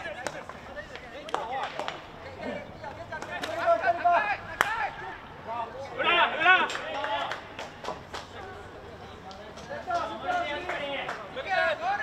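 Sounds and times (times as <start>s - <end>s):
players shouting: 0.0s - 7.6s, 9.8s - 12.0s.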